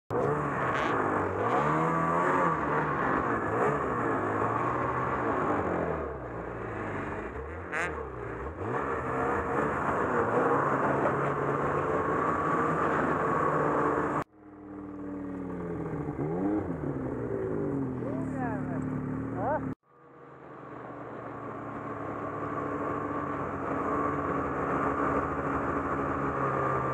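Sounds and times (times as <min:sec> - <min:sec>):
snowmobile engine revving: 0:00.1 - 0:14.3, 0:15.0 - 0:26.9.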